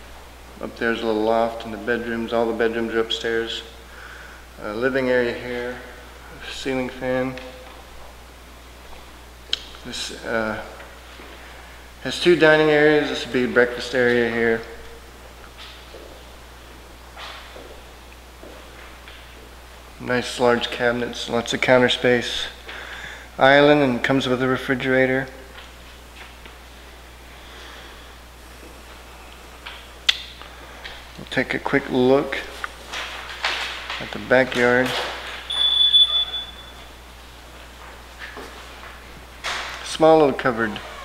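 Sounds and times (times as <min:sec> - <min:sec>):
steady low hum: 0:00.0 - 0:41.0
high electronic beep: 0:35.5 - 0:36.9.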